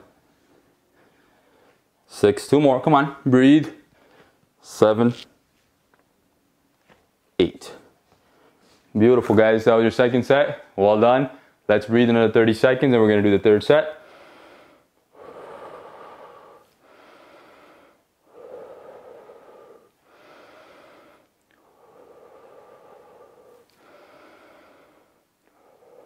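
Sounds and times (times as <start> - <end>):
man breathing deeply: 0.0 - 2.0, 14.0 - 26.0.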